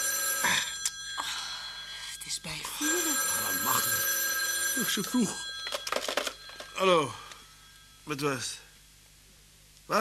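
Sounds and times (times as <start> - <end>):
telephone bell ringing: 0.0 - 8.0.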